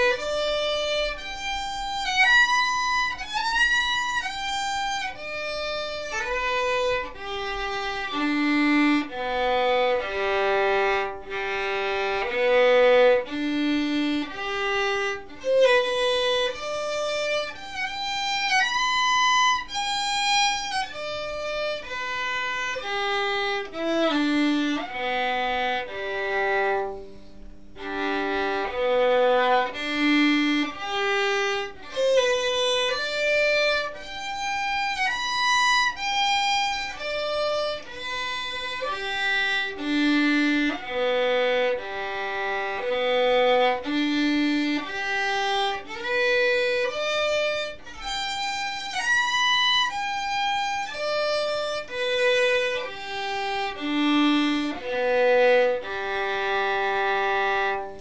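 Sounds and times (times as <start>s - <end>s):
solo violin arpeggios: 0.0s - 58.0s.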